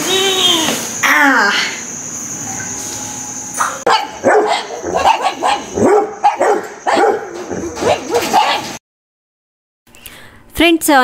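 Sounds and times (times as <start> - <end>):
dog barking and yipping: 3.6 - 8.8.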